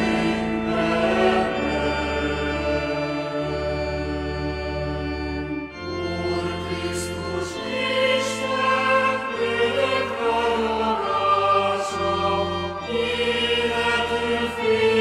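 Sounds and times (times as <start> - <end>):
choir singing slow song: 0.0 - 15.0.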